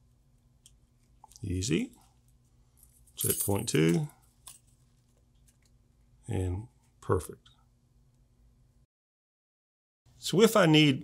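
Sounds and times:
low room tone: 0.0s - 8.9s.

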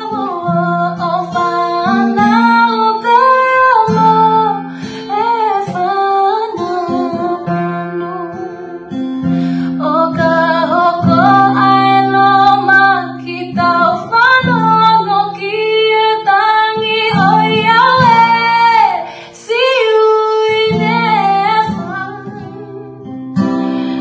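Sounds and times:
woman singing gospel song: 0.0s - 8.8s, 9.7s - 23.1s
strummed acoustic guitar: 0.0s - 24.0s.

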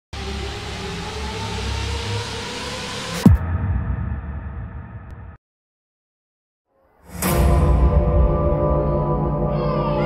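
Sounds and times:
synthesized noisy rush: 0.2s - 5.1s.

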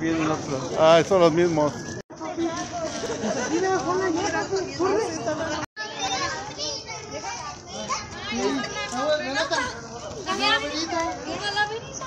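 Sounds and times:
young children talking: 1.4s - 12.0s.

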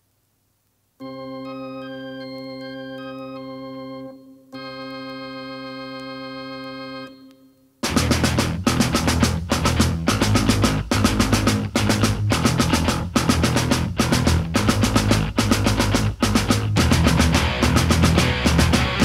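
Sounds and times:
loud hardcore band music: 7.8s - 19.0s.

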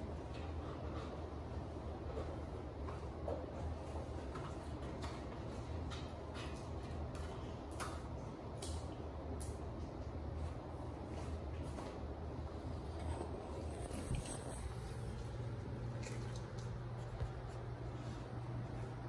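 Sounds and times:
steady low hum: 0.0s - 19.0s
dog claws clicking on tile: 4.3s - 10.1s.

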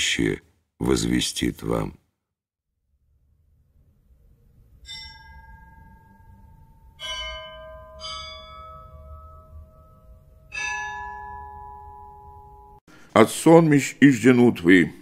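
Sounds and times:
faint low hum: 3.0s - 10.5s
bell strikes ringing: 4.9s - 12.8s.

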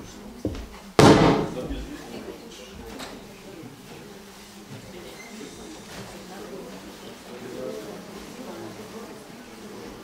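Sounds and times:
microphone stand knocked thump: 1.0s - 1.7s.

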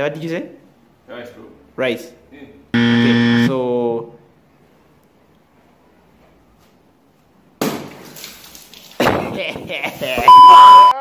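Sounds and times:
water balloon bursting: 7.6s - 10.3s
water splashing down: 7.8s - 10.3s.

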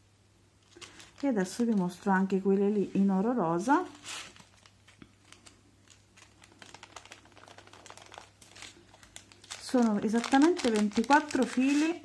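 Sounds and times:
small chains clicking in plastic bags: 5.9s - 11.8s.

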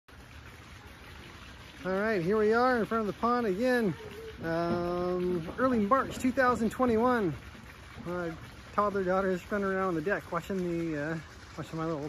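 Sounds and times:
trickle of running water: 0.1s - 12.0s.

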